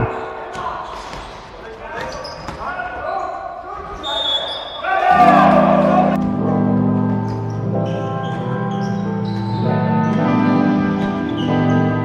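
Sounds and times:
players calling: 2.0s - 12.0s
background music: 5.1s - 12.0s.

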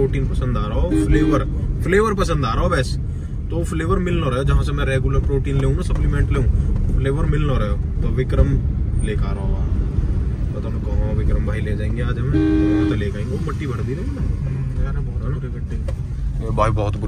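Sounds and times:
car engine and road noise: 0.0s - 17.0s
men talking: 0.0s - 17.0s.

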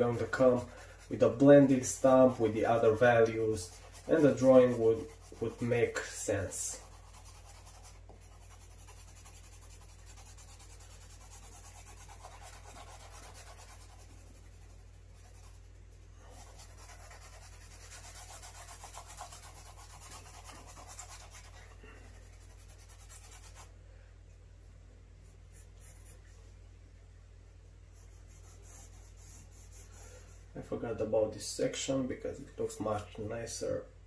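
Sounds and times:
pencil scratching on paper: 0.0s - 23.7s, 27.9s - 30.4s.

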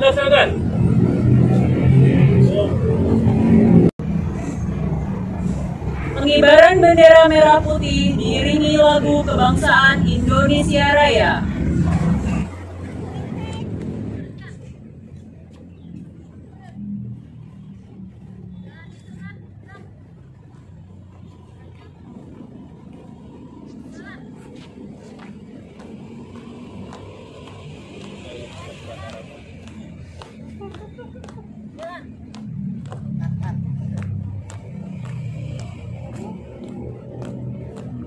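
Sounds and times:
distant voices: 0.0s - 38.0s
low hum of traffic: 0.0s - 38.0s.

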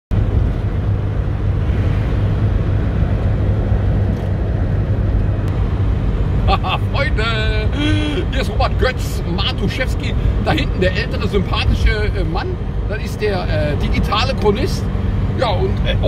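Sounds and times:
road and engine drone: 0.1s - 16.0s
man's voice: 6.5s - 16.0s.

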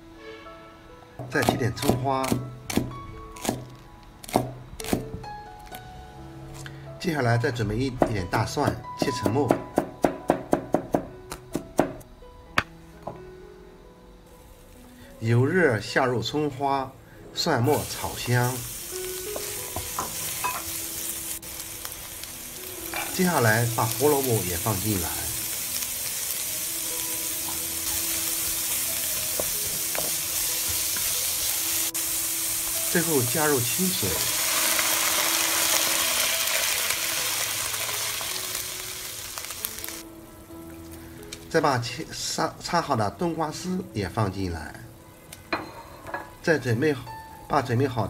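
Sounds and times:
soft background music: 0.0s - 48.0s
vegetables sizzling in a wok: 17.3s - 48.0s.

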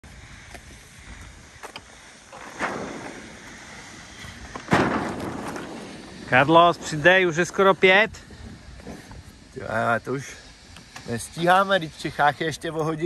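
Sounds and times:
light wind: 0.0s - 13.0s.

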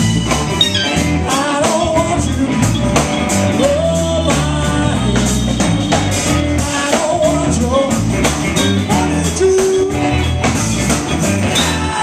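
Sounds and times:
blues band playing: 0.0s - 12.0s
congas: 0.0s - 12.0s
electric guitars: 0.0s - 12.0s.

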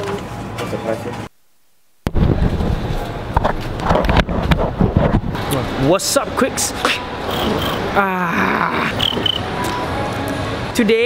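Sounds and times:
wind and handling noise: 2.0s - 5.8s.

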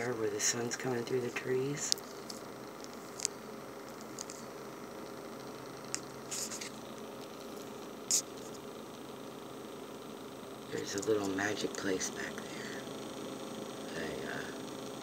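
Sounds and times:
low background hum: 0.0s - 15.0s.

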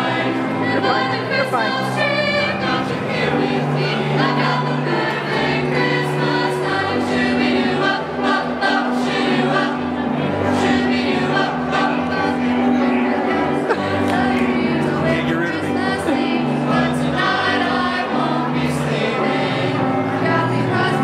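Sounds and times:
choir singing: 0.0s - 21.0s
instrumental accompaniment: 0.0s - 21.0s.

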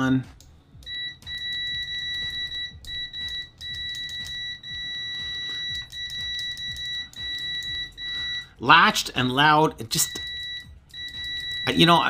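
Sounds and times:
multimeter continuity beep: 0.8s - 12.0s.

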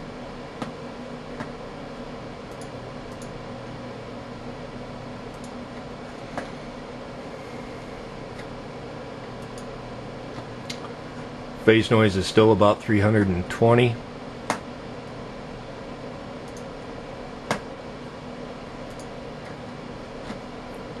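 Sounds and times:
computer fan hum: 0.0s - 21.0s.

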